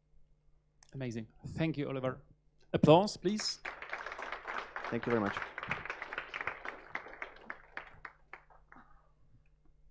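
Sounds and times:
scattered audience clapping: 0:03.2 - 0:09.1.

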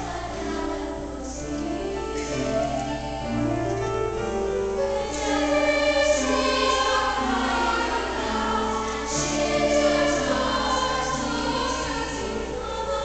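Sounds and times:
piano accompaniment: 0:00.0 - 0:13.0
youth choir singing: 0:00.0 - 0:13.0.

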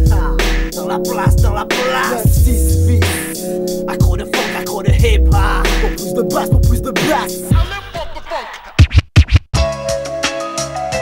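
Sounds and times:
hip-hop beat: 0:00.0 - 0:11.0
turntable scratching: 0:00.1 - 0:09.6.

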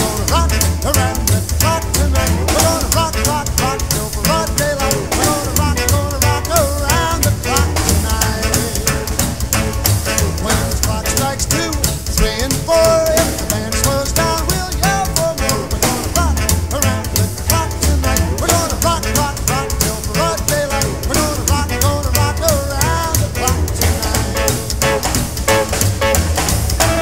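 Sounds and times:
drum backbeat: 0:00.0 - 0:27.0
electric bass: 0:00.0 - 0:27.0
saxophone lead: 0:00.0 - 0:27.0.

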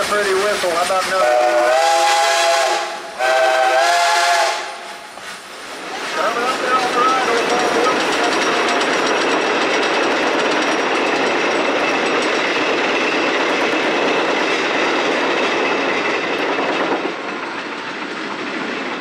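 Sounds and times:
rail cars clattering on track: 0:00.0 - 0:19.0.

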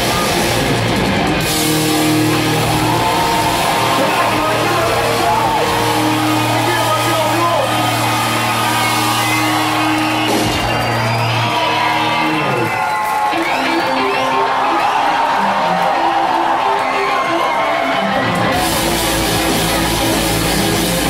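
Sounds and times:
crowd shouting: 0:00.0 - 0:21.0
punk rock band playing: 0:00.0 - 0:21.0.

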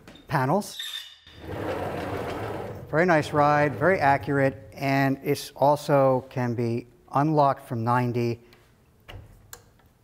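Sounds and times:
saw table rolling on rails: 0:01.4 - 0:04.7.

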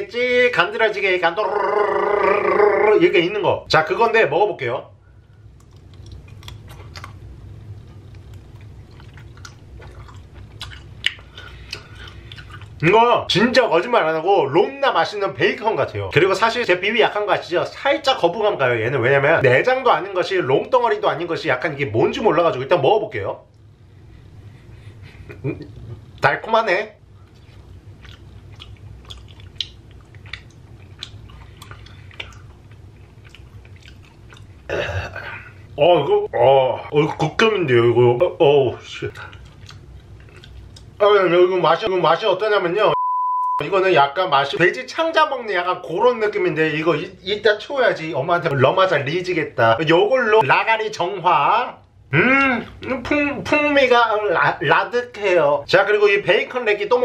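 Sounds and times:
low steady hum: 0:00.0 - 0:57.0
vocal sound: 0:01.4 - 0:03.1
person chewing: 0:05.4 - 0:12.8, 0:27.2 - 0:34.7, 0:39.1 - 0:41.0
wet mouth clicks: 0:05.6 - 0:07.2, 0:07.9 - 0:12.8, 0:28.0 - 0:34.5, 0:39.1 - 0:41.0.

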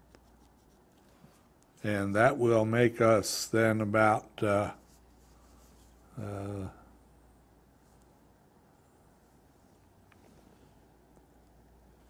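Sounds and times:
man speaking: 0:01.8 - 0:04.8, 0:06.2 - 0:06.8.

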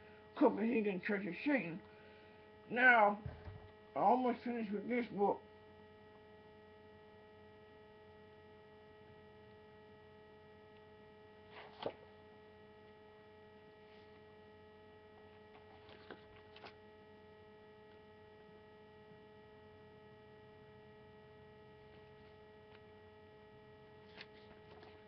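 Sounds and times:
steady electrical hum: 0:00.0 - 0:25.0.

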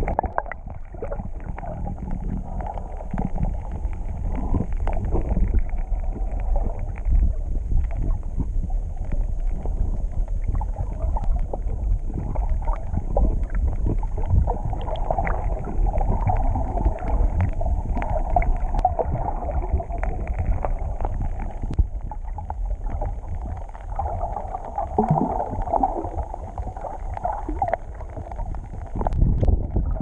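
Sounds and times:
faint clicks and crackles: 0:00.0 - 0:30.0
underwater water rumble: 0:00.0 - 0:30.0.

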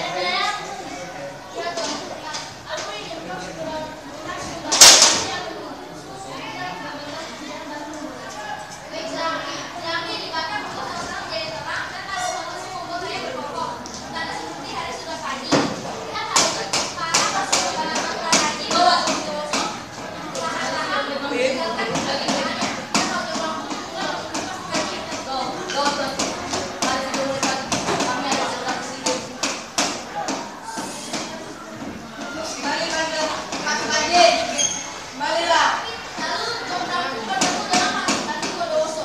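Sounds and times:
young girls speaking: 0:00.0 - 0:39.0.

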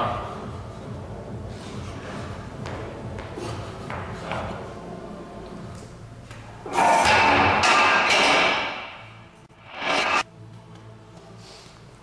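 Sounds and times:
metal clatter: 0:06.7 - 0:10.2.

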